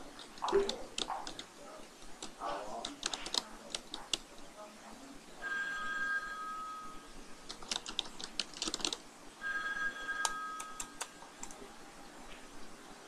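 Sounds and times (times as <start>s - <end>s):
keyboard key clicks: 2.2s - 4.2s, 7.5s - 9.0s.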